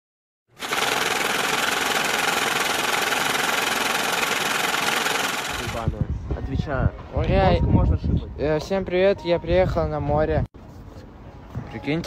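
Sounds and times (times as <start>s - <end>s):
loud harsh rattling: 0.5s - 6.0s.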